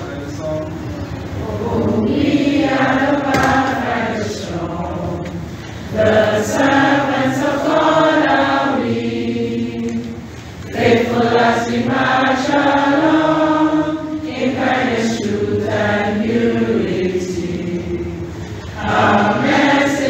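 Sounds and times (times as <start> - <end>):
group of voices singing: 1.4 - 20.0.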